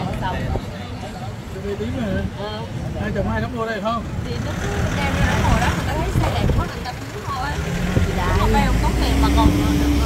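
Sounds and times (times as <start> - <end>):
people talking: 0.0 - 10.0
vehicle rumble and road noise: 0.0 - 10.0.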